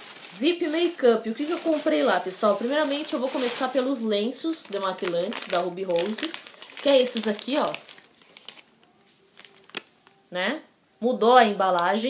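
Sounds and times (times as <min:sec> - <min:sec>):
plastic wipes packet crinkling: 0:00.0 - 0:10.2.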